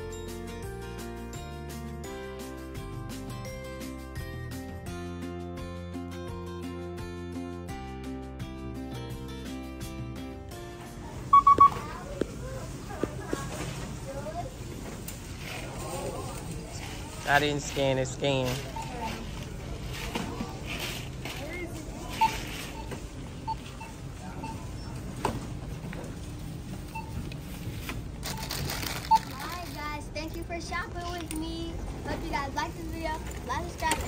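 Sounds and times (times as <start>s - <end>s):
background music: 0.0s - 11.7s
scanner triple beep: 11.3s - 11.9s.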